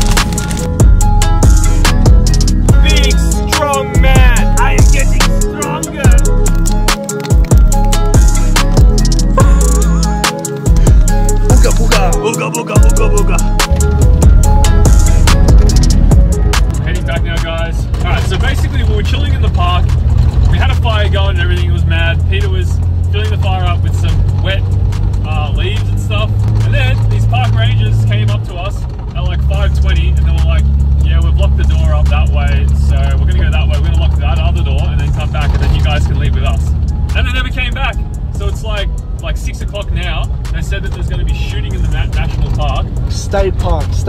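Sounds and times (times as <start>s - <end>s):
car engine droning: 0.0s - 44.0s.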